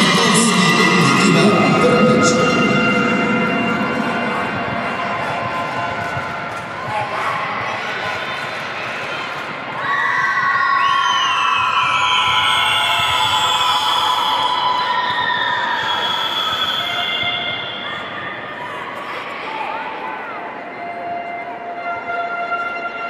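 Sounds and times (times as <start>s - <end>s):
music: 0.0s - 6.9s, 20.8s - 23.0s
audience cheering and screaming: 9.8s - 19.0s.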